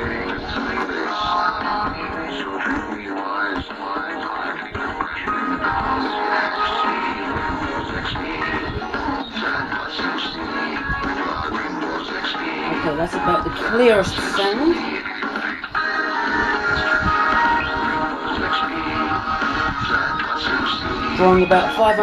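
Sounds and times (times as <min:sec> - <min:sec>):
music through small speaker: 0:00.0 - 0:22.0.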